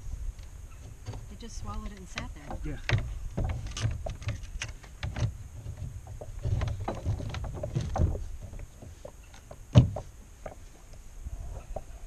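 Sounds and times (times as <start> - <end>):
fishing gear clicks and knocks: 0.4 - 11.0
low bumps against kayak hull: 0.8 - 10.9.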